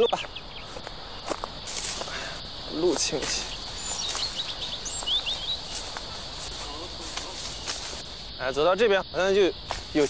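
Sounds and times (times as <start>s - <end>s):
weeds rustling and crackling underfoot: 0.0s - 8.6s, 9.6s - 10.0s
bird chirping: 0.0s - 10.0s
high insect drone: 0.0s - 10.0s.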